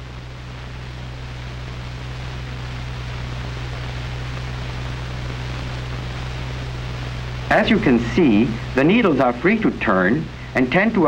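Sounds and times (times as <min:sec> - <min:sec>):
film soundtrack hiss: 0:00.0 - 0:11.0
low constant hum: 0:00.0 - 0:11.0.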